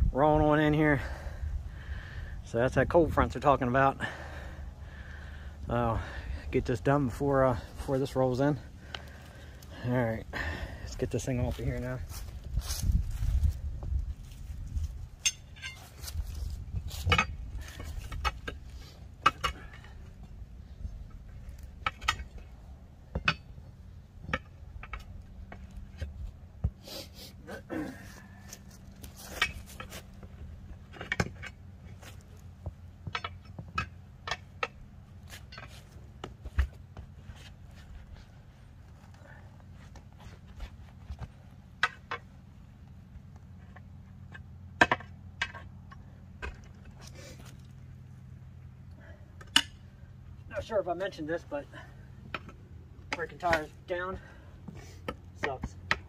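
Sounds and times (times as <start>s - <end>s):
tire irons clanking on wheel rim: 5.9s - 26.8s, 27.5s - 38.3s, 38.9s - 56.0s.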